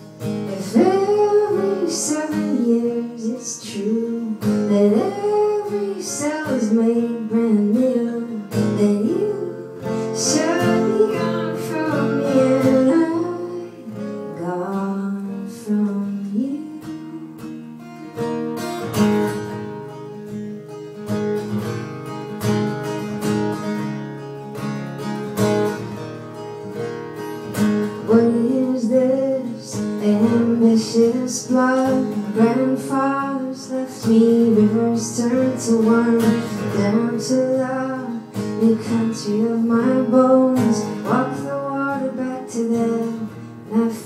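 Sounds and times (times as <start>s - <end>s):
acoustic guitar strumming: 0.0s - 44.0s
woman singing: 0.3s - 18.3s, 27.9s - 44.0s.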